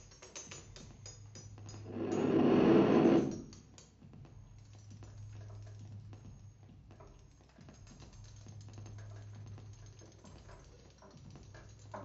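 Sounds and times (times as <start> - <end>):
loud grainy noise: 1.9 - 3.4.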